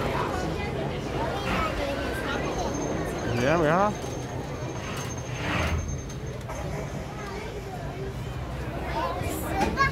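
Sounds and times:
faint voices of people: 0:00.0 - 0:09.9.

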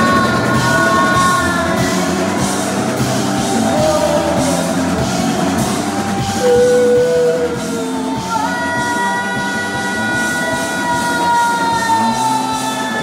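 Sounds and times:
live rock band playing: 0:00.0 - 0:13.0.

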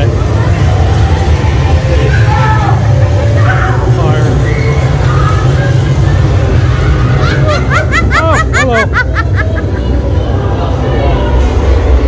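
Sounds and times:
person laughing: 0:07.2 - 0:10.0.

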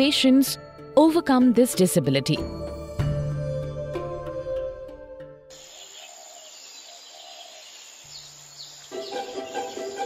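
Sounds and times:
background music with strings: 0:00.0 - 0:05.5, 0:08.6 - 0:10.0
birds chirping: 0:05.5 - 0:10.0.

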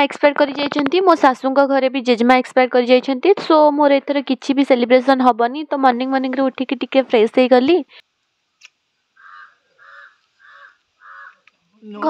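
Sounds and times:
bird calling: 0:09.1 - 0:11.5.

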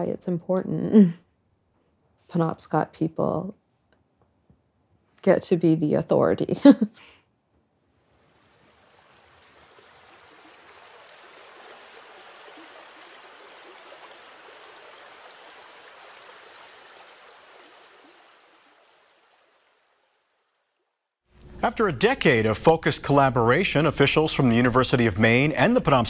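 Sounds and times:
faint flowing water: 0:07.7 - 0:26.0.

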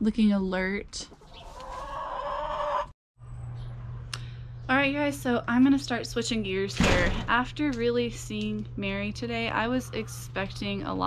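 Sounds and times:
hen clucking: 0:01.2 - 0:02.9.

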